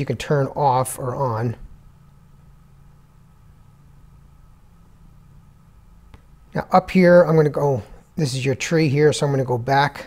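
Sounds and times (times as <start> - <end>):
low hum of room tone: 0.0 - 10.0.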